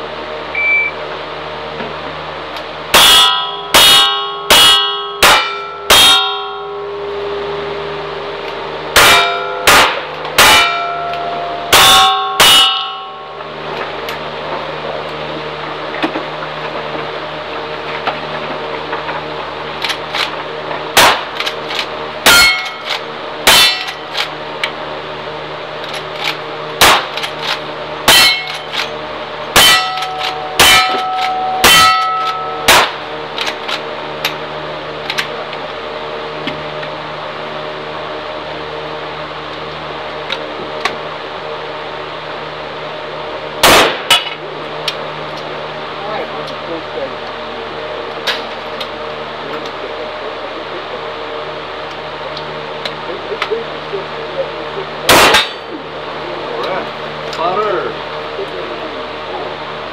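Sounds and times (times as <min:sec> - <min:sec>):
steel target clanging: 0:02.9 - 0:07.4, 0:08.9 - 0:14.2, 0:19.8 - 0:24.3, 0:25.8 - 0:34.4, 0:55.1 - 0:55.8
rifle shots: 0:26.8 - 0:27.1, 0:43.6 - 0:44.1, 0:55.1 - 0:55.5.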